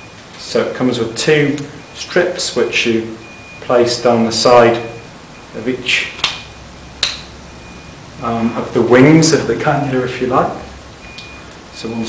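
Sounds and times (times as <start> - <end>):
sharp clicks: 6.2 - 7.3.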